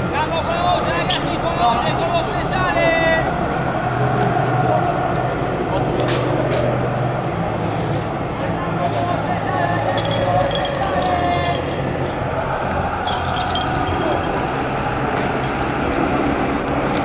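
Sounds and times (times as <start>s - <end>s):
crowd chanting and singing: 0.7s - 17.0s
people talking nearby: 4.1s - 14.6s.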